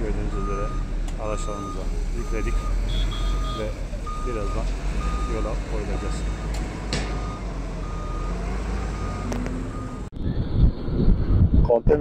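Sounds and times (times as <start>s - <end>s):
truck engines rumbling: 0.0s - 11.3s
truck reversing alarm beeping: 0.2s - 10.1s.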